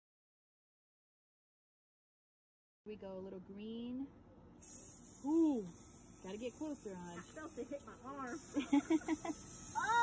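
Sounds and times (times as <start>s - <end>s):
aerosol can spraying: 4.6s - 10.0s.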